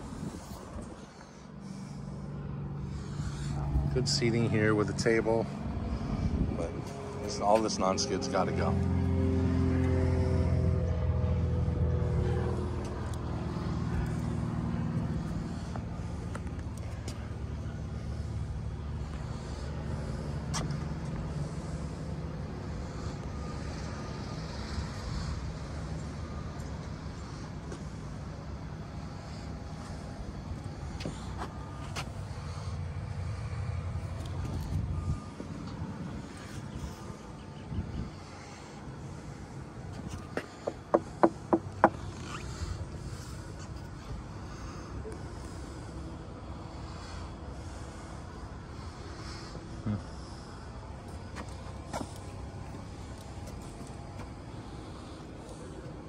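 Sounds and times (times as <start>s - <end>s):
engine rumble of passing motor: 0.0s - 56.0s.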